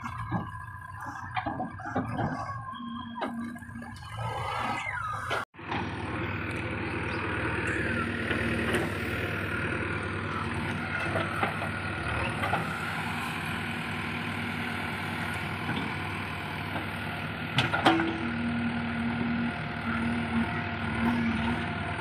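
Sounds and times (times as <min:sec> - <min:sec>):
diesel engine running: 0:00.0 - 0:22.0.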